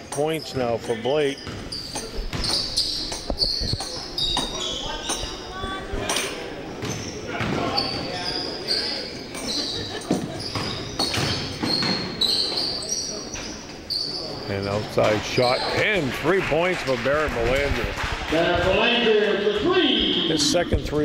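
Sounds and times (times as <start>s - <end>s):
sneaker squeaks: 0.0s - 16.0s.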